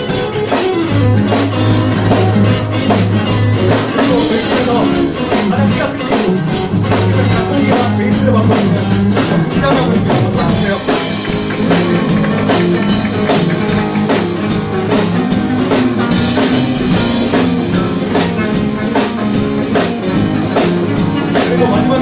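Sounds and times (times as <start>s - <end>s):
bass guitar: 0.0s - 22.0s
drum kit steady beat: 0.0s - 22.0s
electric guitar: 0.0s - 22.0s
keyboard: 0.0s - 22.0s.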